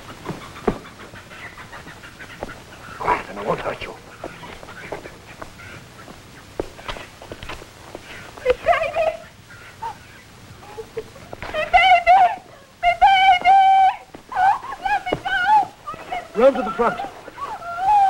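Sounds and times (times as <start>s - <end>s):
woman screaming: 11.5s - 18.0s.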